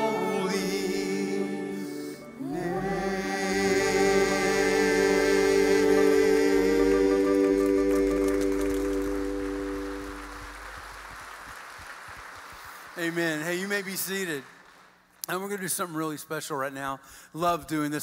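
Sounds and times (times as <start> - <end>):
worship band sustained chord: 0.0 - 11.0.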